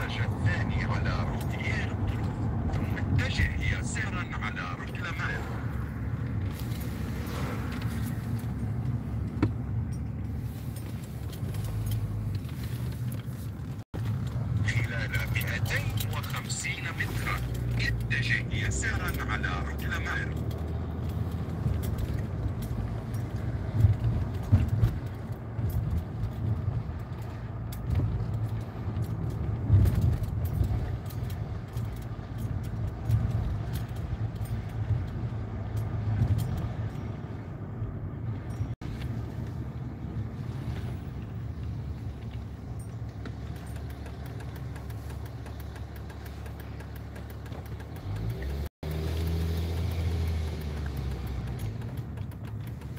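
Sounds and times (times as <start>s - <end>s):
engine and road rumble: 0.0s - 52.9s
light rattling clicks: 7.7s - 37.1s, 42.0s - 52.9s.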